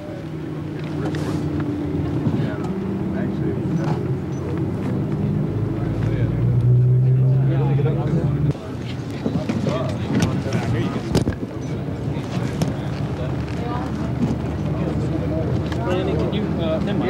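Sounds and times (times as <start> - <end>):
car engines humming: 0.0 - 17.0
faint voices of onlookers: 0.0 - 17.0.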